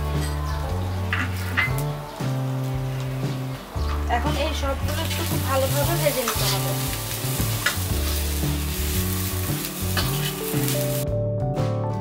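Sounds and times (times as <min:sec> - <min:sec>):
food sizzling in a pan: 0:00.0 - 0:11.0
metal spatula scraping a pan: 0:04.9 - 0:10.8.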